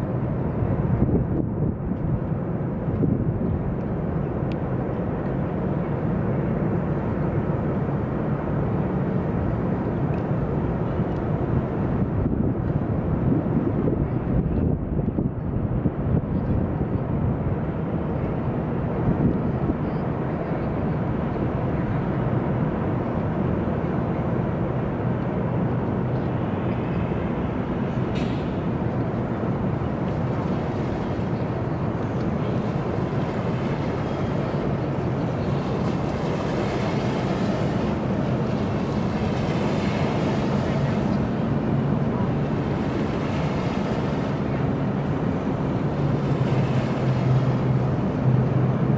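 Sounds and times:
boat engines: 0.0s - 48.9s
distant traffic rumble: 0.0s - 48.9s
wind on microphone: 0.0s - 48.9s
boat wake splashing on gravel: 17.1s - 48.9s.

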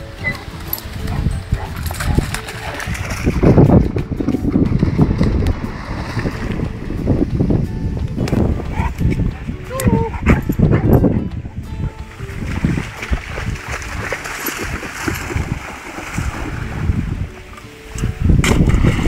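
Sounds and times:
wind on microphone: 0.0s - 19.0s
dog barking: 9.9s - 11.0s
stick splashing into water: 12.4s - 16.9s, 18.4s - 19.0s.

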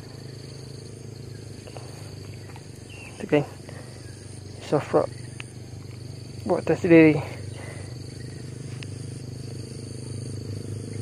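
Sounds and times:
high insect drone: 0.0s - 11.0s
low outdoor rumble: 0.0s - 11.0s.

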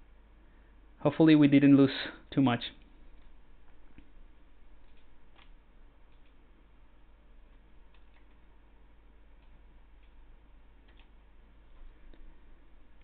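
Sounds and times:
low hum: 2.2s - 13.0s.

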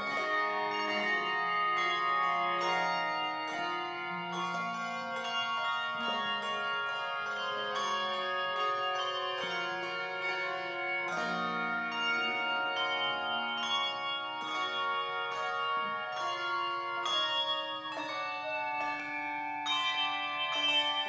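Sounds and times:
handbell choir ringing hymn: 0.0s - 21.0s.

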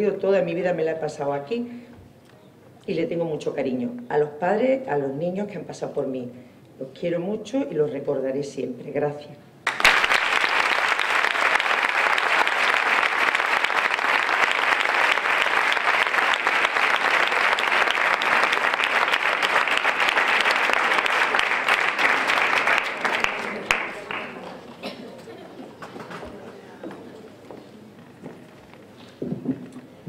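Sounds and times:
audience applauding: 9.6s - 24.9s.

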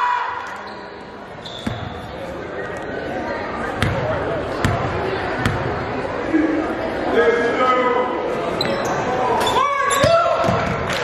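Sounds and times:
background chatter: 0.5s - 11.0s.

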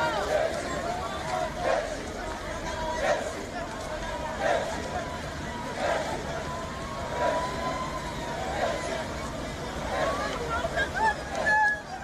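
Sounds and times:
crowd chatter: 0.0s - 12.0s
vehicles running: 0.0s - 12.0s.

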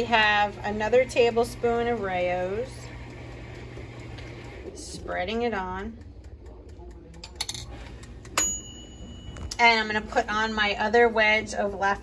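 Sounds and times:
kitchenware clinking: 7.2s - 10.2s.

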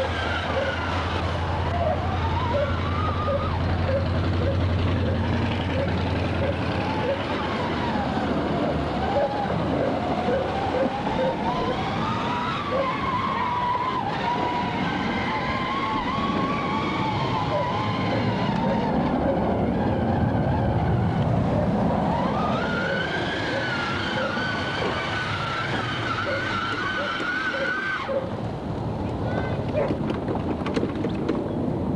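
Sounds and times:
toy car electric motor whining: 0.0s - 4.1s, 6.4s - 28.3s.

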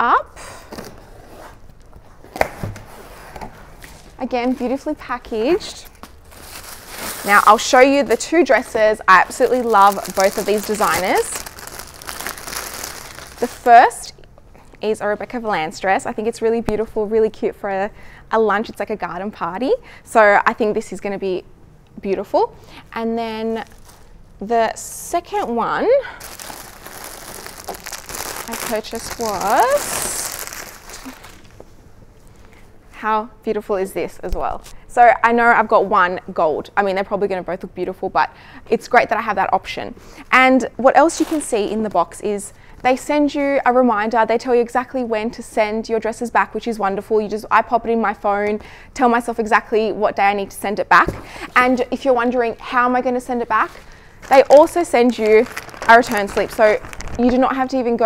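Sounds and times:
plastic bag crinkling: 5.7s - 14.0s, 23.4s - 24.2s, 26.0s - 31.7s, 53.2s - 58.0s.

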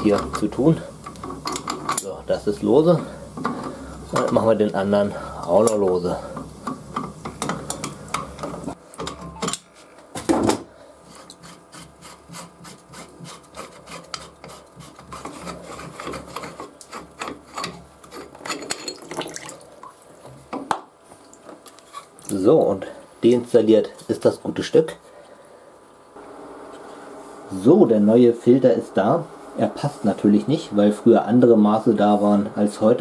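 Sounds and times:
low heating hum: 0.0s - 33.0s.

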